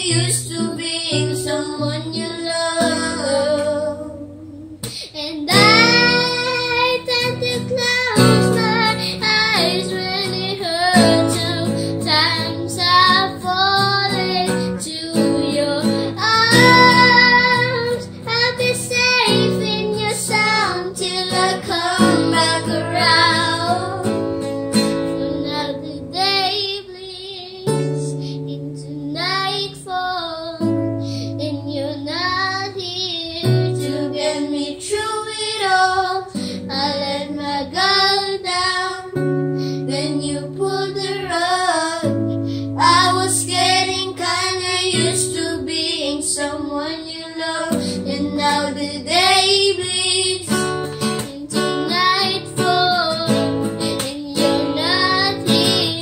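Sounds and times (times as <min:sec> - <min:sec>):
acoustic guitar strummed and picked: 0:00.0 - 0:56.0
girl singing a slow ballad: 0:00.0 - 0:56.0.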